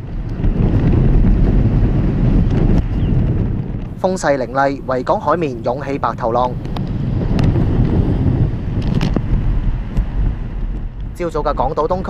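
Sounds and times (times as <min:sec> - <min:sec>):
rough sea and breaking waves: 0:00.0 - 0:12.0
wind blowing on microphone: 0:00.0 - 0:12.0.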